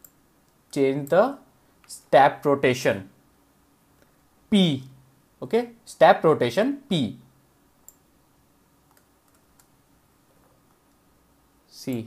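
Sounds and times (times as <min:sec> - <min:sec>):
computer mouse click: 0:00.0 - 0:01.2, 0:07.8 - 0:08.0, 0:08.9 - 0:09.8.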